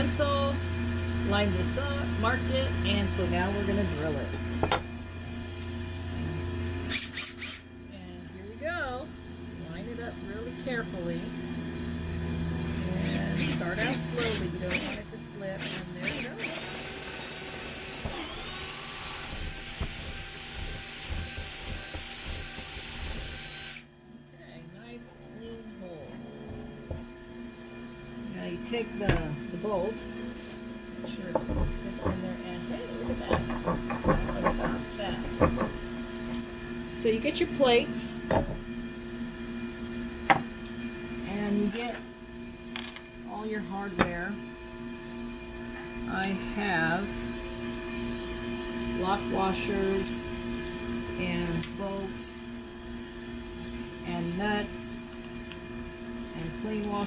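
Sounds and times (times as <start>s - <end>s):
cordless drill boring wood: 6.8s - 7.7s, 12.7s - 23.9s.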